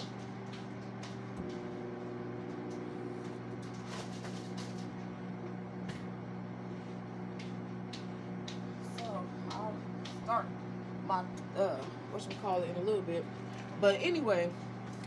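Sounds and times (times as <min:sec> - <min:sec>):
microwave oven humming: 0:00.0 - 0:15.0.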